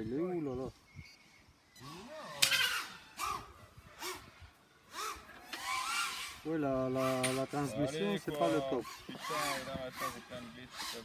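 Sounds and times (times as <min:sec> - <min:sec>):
quadcopter motors whining: 0:00.8 - 0:11.0.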